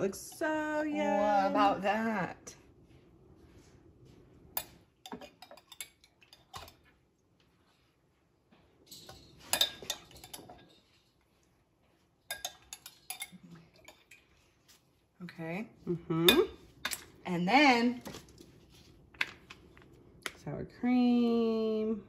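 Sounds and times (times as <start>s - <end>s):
utensil clinking on ceramic dishes: 4.6s - 6.9s, 8.9s - 11.1s, 12.3s - 14.2s, 16.3s - 17.2s.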